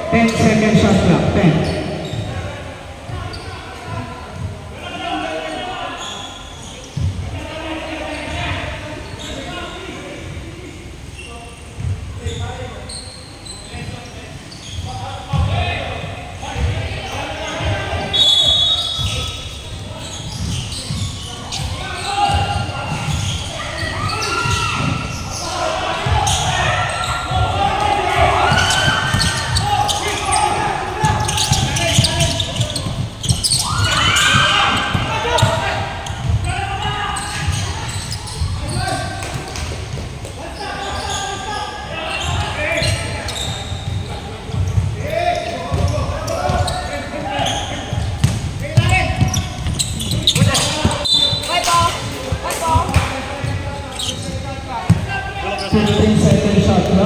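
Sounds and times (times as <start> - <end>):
players calling out: 16.3 - 57.0.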